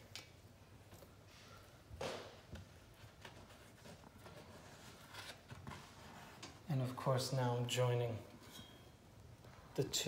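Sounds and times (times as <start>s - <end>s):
wallpaper rustling: 1.3s - 6.8s.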